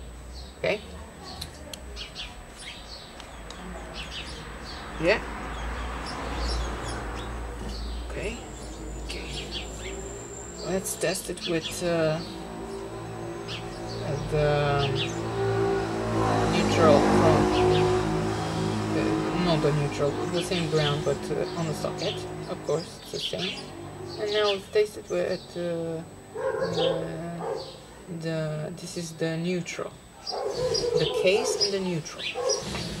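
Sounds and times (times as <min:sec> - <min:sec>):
small birds chirping: 0:00.0 - 0:33.0
steady low hum: 0:06.3 - 0:33.0.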